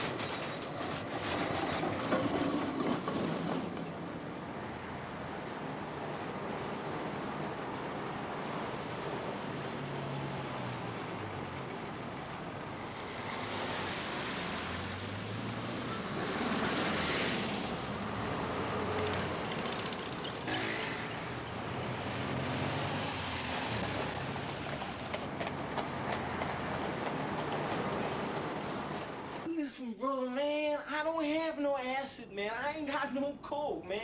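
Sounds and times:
motor vehicles rumbling: 0.0 - 29.5.

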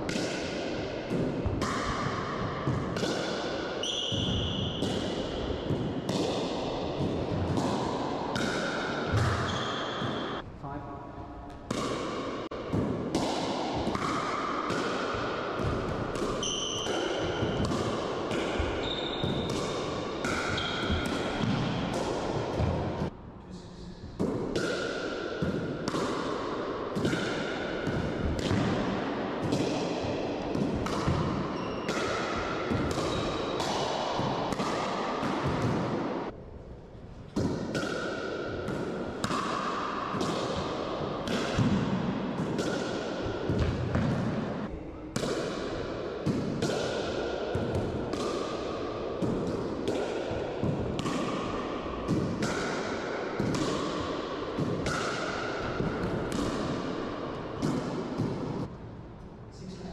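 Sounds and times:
ball bouncing: 1.1 - 10.4, 11.5 - 23.1, 24.2 - 36.0, 37.4 - 58.7.

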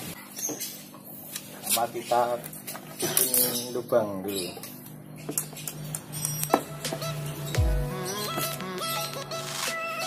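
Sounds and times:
background music: 6.5 - 10.0.

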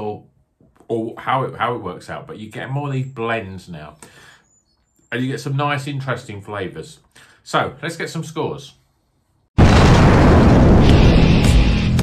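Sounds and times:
explosion rumbling: 9.6 - 12.0.

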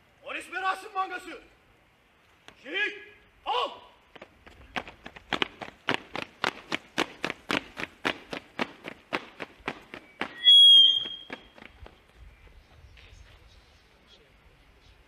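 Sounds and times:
boots marching on asphalt: 4.0 - 12.8.

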